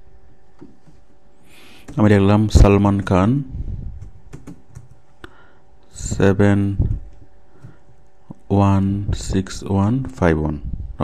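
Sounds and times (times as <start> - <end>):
computer keyboard keystrokes: 4.0 - 5.0.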